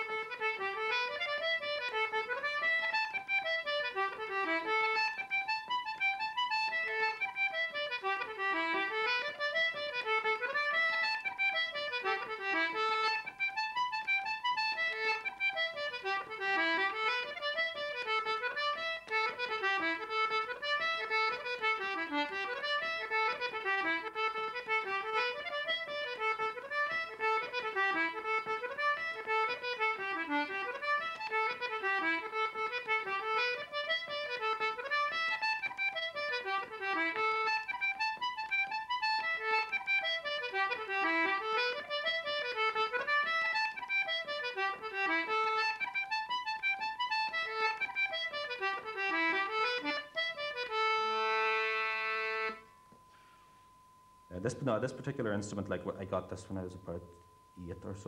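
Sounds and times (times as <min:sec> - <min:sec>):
concertina playing fast tune: 0:00.0 - 0:58.0.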